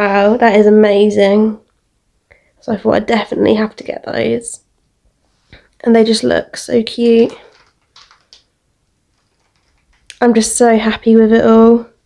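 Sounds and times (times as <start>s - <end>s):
plastic bag crinkling: 7.1s - 10.2s.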